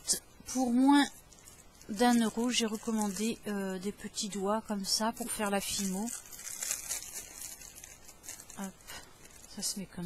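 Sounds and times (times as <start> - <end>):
plastic packaging crinkling: 0.1 - 10.0.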